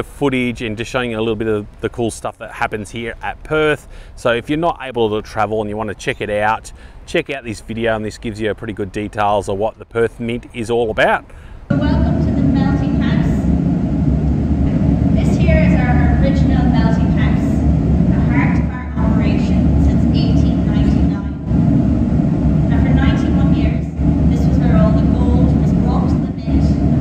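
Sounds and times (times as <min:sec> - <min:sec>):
woman speaking: 0:11.7 - 0:13.5, 0:15.1 - 0:21.5, 0:22.7 - 0:27.0
loud low rumble: 0:11.7 - 0:27.0.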